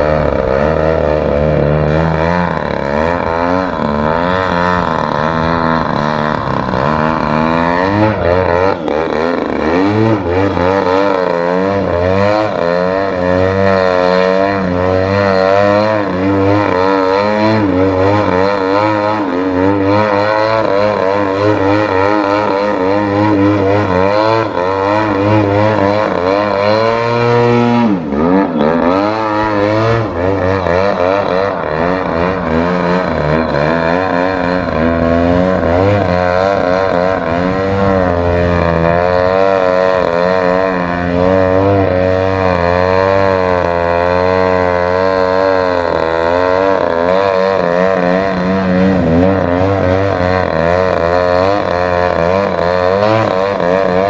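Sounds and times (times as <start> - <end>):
model airplane engine and propeller: 0.0 - 54.0.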